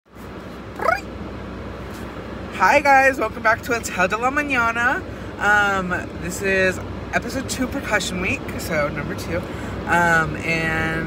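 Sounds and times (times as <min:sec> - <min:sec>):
car cabin hum: 0:00.2 - 0:05.1
person saying ooh: 0:00.8 - 0:01.0.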